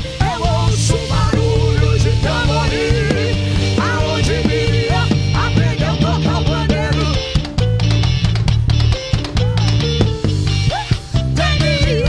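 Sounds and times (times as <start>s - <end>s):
drum kit beat: 0.0s - 12.0s
heavy bass line: 0.0s - 12.0s
live band playing gospel music: 0.0s - 12.0s.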